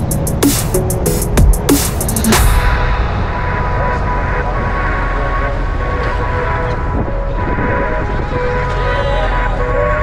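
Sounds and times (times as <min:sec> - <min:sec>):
tyre noise on road: 0:00.0 - 0:10.0
vehicle engine rumble: 0:00.0 - 0:10.0.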